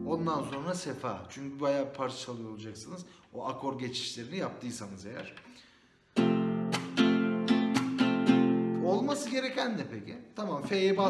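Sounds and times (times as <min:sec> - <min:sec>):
classical guitar strumming: 0:00.0 - 0:01.0, 0:05.5 - 0:09.3.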